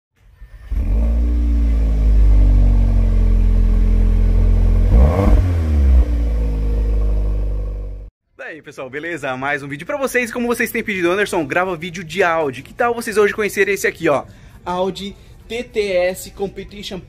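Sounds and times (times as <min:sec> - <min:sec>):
car engine starting and idling: 0:00.6 - 0:08.1
engine revving: 0:00.6 - 0:08.1.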